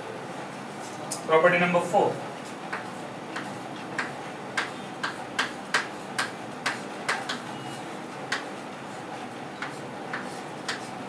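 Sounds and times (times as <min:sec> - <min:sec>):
chalk clicking on chalkboard: 0:02.7 - 0:07.5, 0:08.3 - 0:11.0.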